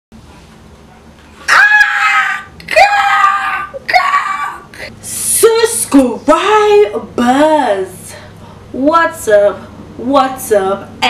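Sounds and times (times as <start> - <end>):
person shrieking with excitement: 1.5 - 4.7.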